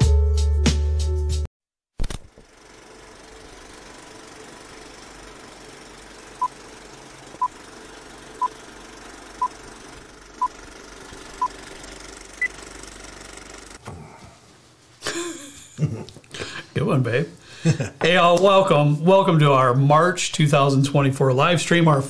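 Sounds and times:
film projector rattle and crackle: 2.0 - 13.8.

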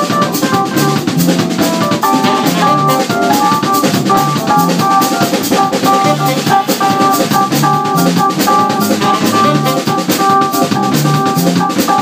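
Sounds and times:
drum kit groove: 0.0 - 12.0
electric bass: 0.0 - 12.0
keyboard: 0.0 - 12.0
saxophone: 1.9 - 10.6.

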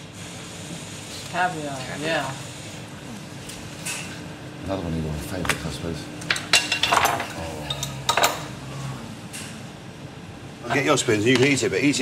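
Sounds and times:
cutlery clinking on crockery: 6.2 - 8.5.

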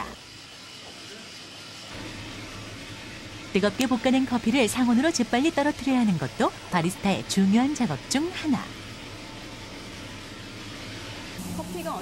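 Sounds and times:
coffee roaster hissing: 0.0 - 12.0.

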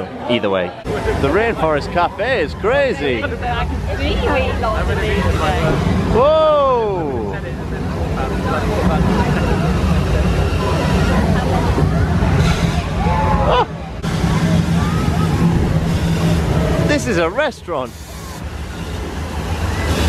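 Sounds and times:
crowd chatter: 0.0 - 20.0
show volcano rumble and rush: 0.8 - 20.0.

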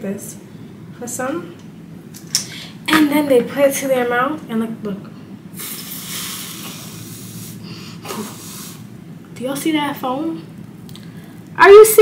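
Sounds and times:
breath blown through wet pad: 5.5 - 9.0.

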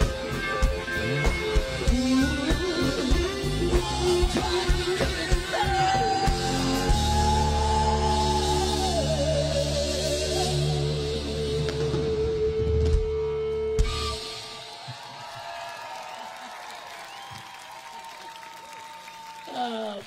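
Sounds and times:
live rock band playing: 0.0 - 15.1
crowd noise: 13.8 - 20.0.

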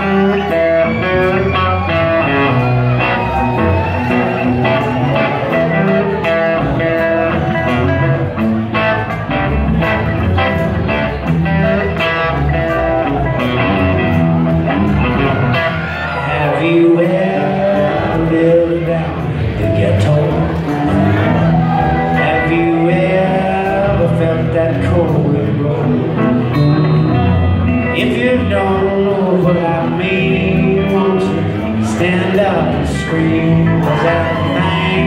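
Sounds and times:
bass guitar: 0.0 - 35.0
electric guitar lead line: 0.0 - 35.0.

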